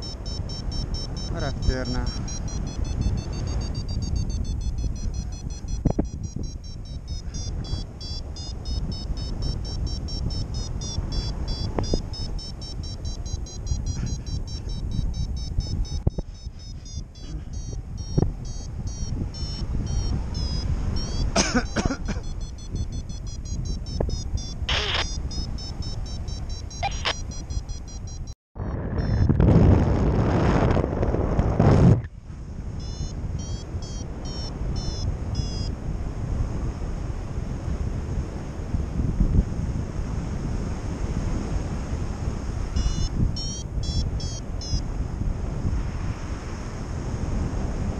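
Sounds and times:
high electronic variometer tone: 0.0s - 30.0s, 32.6s - 35.8s, 42.7s - 45.0s
wind rushing over microphone: 0.0s - 47.9s.

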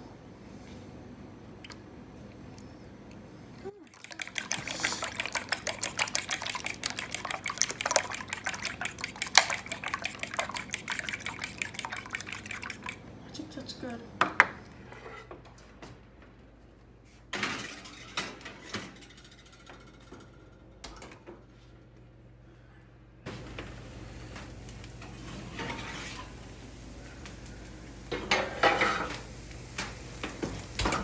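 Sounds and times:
liquid sloshing: 3.8s - 13.0s
fork clicking against bowl: 4.1s - 13.0s.

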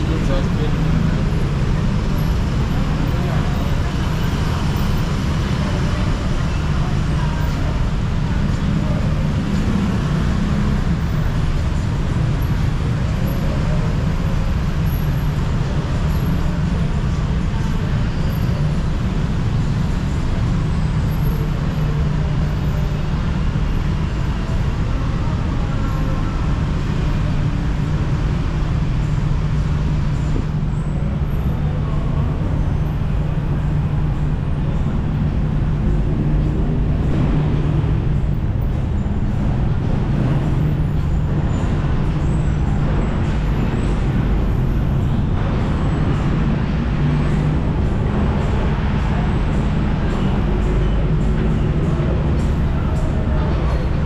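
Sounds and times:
city road traffic: 0.0s - 54.0s.

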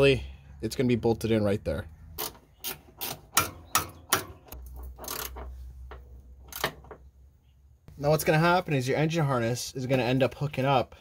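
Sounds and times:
metallic clicks and knocks: 2.2s - 7.1s.

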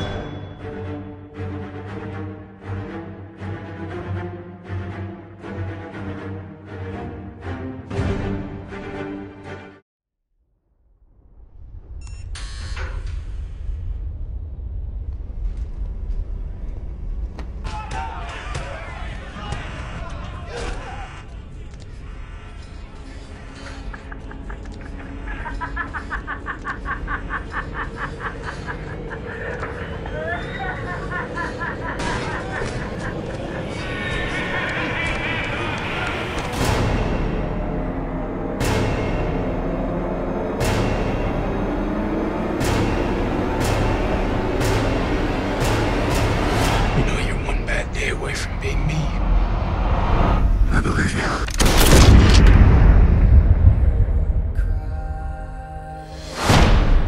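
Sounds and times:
low rumble: 11.0s - 17.6s, 35.7s - 57.0s
cinematic boom hit: 51.6s - 54.6s.

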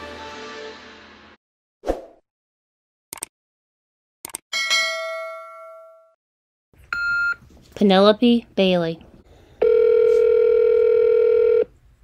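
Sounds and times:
bright bell ding: 4.6s - 6.2s.

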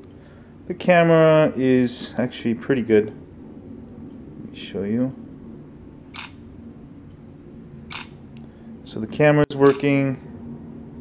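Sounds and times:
phone camera shutter sound: 6.1s - 6.4s, 7.9s - 8.2s, 9.6s - 9.9s.

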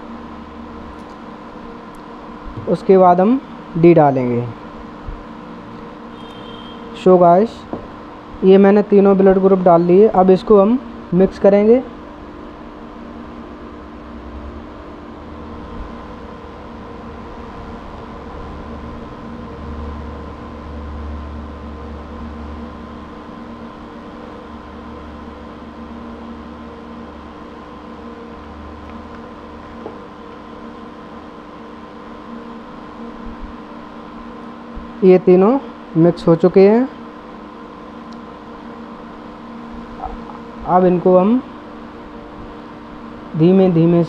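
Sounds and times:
steady machine hum: 0.0s - 44.0s.

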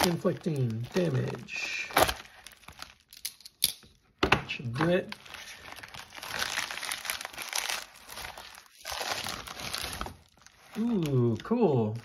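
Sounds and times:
plastic crinkling: 0.0s - 3.6s, 4.6s - 12.0s.

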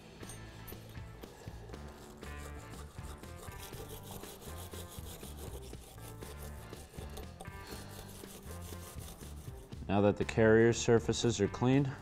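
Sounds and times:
wire brush scraping metal: 0.8s - 9.8s.

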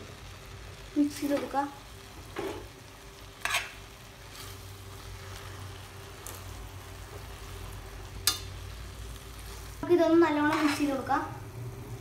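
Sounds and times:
low sizzle: 0.0s - 12.0s
spaghetti stirred in a pan: 0.1s - 12.0s
metal utensils scraping a pan: 3.4s - 4.6s, 8.2s - 8.6s, 10.3s - 11.1s.

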